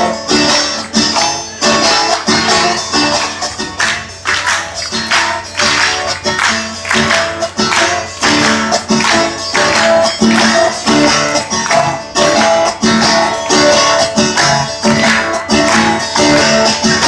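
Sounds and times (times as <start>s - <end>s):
strummed acoustic guitar: 0.0s - 17.0s
hands clapping in time: 0.7s - 17.0s.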